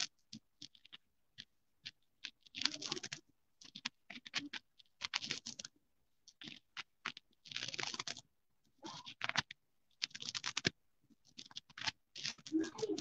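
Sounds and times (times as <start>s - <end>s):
computer keyboard typing: 0.0s - 13.0s.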